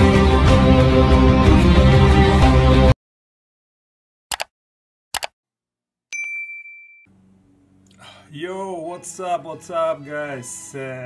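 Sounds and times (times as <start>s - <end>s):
double mouse click: 4.3s - 4.5s
notification bell ding: 6.1s - 7.1s.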